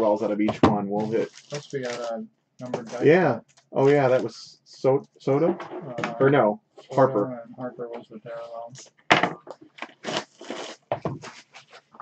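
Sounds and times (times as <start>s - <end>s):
cards and wrappers rustling: 1.0s - 4.4s, 9.8s - 12.0s.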